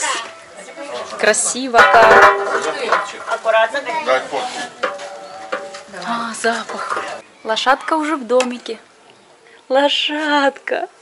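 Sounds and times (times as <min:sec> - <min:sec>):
spoon scraping and knocking pot: 0:01.3 - 0:03.4, 0:04.7 - 0:06.0.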